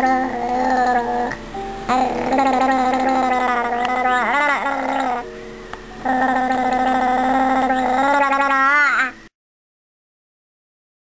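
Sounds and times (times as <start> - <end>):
baby gurgling: 0.0 - 5.3, 6.0 - 9.2.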